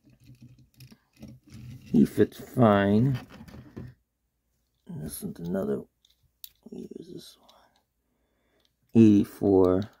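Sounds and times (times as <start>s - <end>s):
man speaking: 1.9s - 3.3s, 4.8s - 5.9s, 6.6s - 7.6s, 9.0s - 10.0s.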